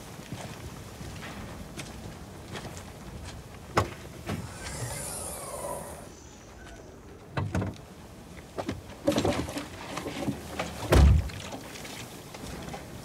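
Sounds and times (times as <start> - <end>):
door squeaking slide: 4.3 - 6.4.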